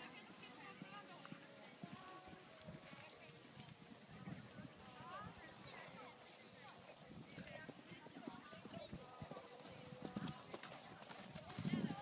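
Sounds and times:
faint voices: 0:00.0 - 0:12.0
horse hoofbeats on sand: 0:06.7 - 0:12.0.

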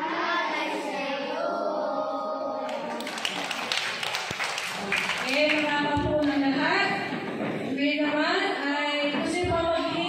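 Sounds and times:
children's voices: 0:00.0 - 0:03.6
children clapping: 0:02.6 - 0:06.6.

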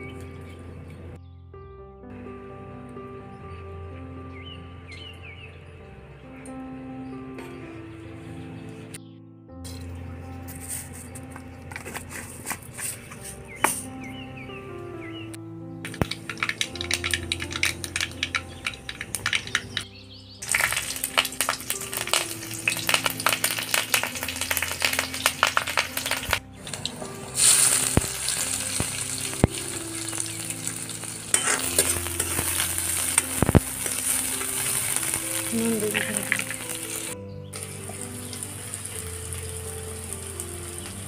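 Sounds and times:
frying sizzle: 0:15.8 - 0:19.8, 0:20.4 - 0:41.0
seeds crackling in hot oil: 0:15.8 - 0:41.0
spoon stirring onions: 0:27.4 - 0:37.1.

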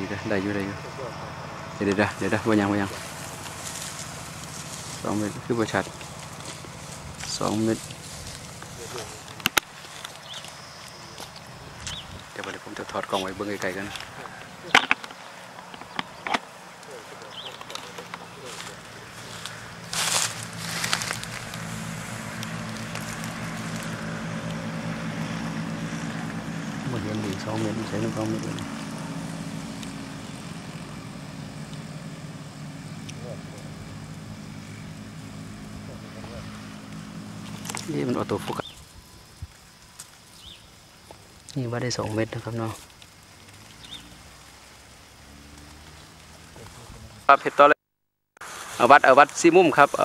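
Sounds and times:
background hiss: 0:00.0 - 0:47.8, 0:48.4 - 0:50.0.

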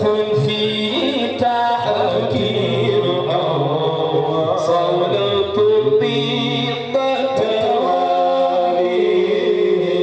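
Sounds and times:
music: 0:00.0 - 0:10.0
voices chanting: 0:00.7 - 0:05.2.

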